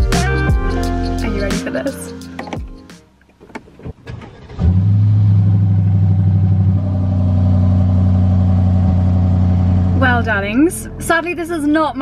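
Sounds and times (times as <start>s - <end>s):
car engine starting and idling: 2.2s - 12.0s.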